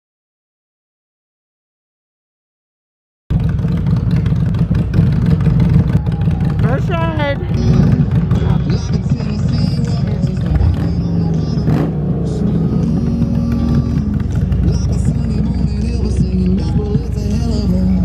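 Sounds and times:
motorcycle engine idling: 3.3 - 18.0.

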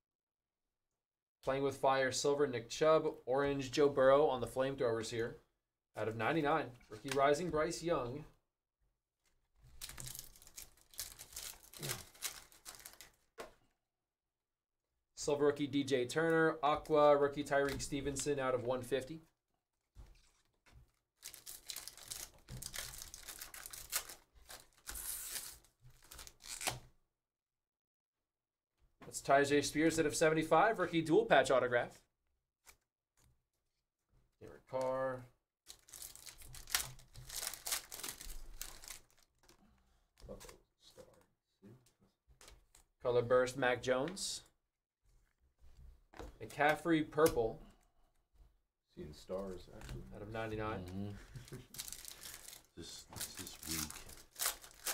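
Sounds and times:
foil pack tearing and crinkling: 9.7 - 13.2, 21.2 - 26.9, 35.7 - 39.6, 51.4 - 54.9.

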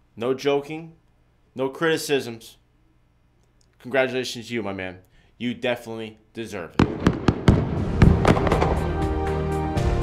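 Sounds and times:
fireworks bangs and crackles: 6.8 - 9.3
music with held notes: 8.0 - 10.0.

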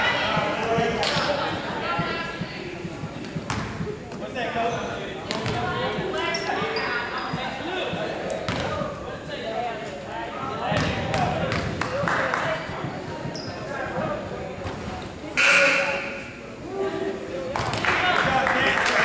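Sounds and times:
sneakers squeaking: 0.0 - 9.0, 12.5 - 16.4
players' voices echoing: 0.0 - 19.0
basketball dribbling: 1.9 - 4.0, 5.3 - 8.8
referee's whistle blast: 15.4 - 16.2.

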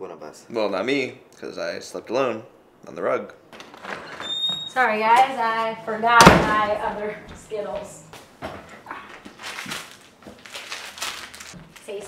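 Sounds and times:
footsteps on hardwood floor: 3.8 - 10.4.

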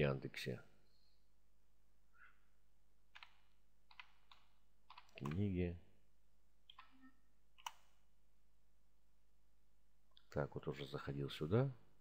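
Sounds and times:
faint keyboard keystrokes: 3.2 - 5.5.

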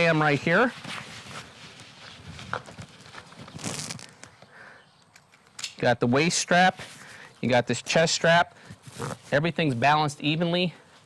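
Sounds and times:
backpack fabric rustling: 0.6 - 4.3, 8.6 - 9.4.

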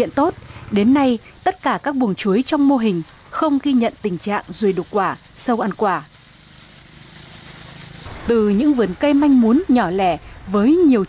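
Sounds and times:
light hiss: 0.0 - 8.8.

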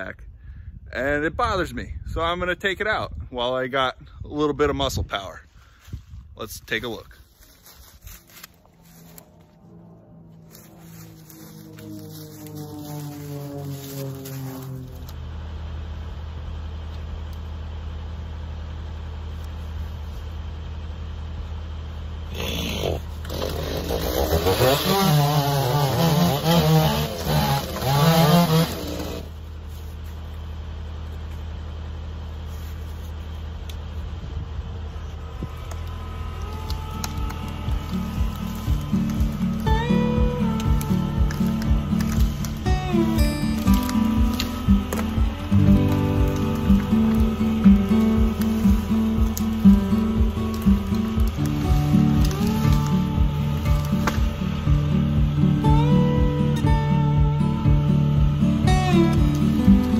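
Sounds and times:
chainsaw cutting log: 22.4 - 29.4, 36.4 - 59.9.

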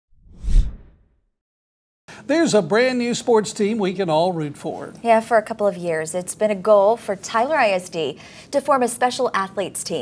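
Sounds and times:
whoosh with deep rumble: 0.2 - 1.0.

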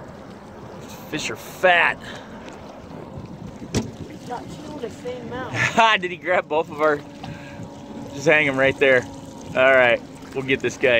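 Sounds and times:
water noise: 0.0 - 10.9
wind: 0.0 - 10.9.

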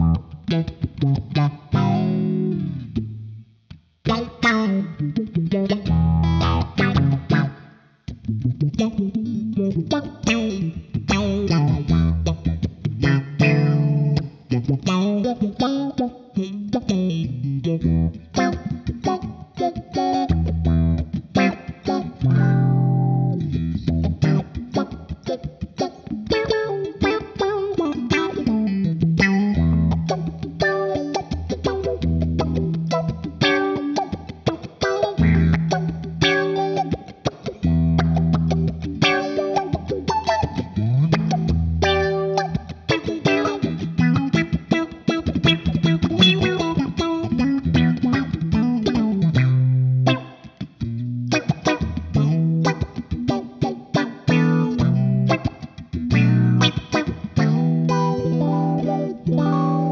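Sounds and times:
funky electric guitar with filter: 0.0 - 59.9.

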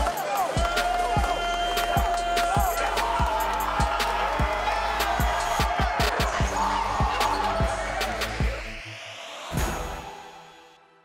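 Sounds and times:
soundtrack music: 0.0 - 11.0.

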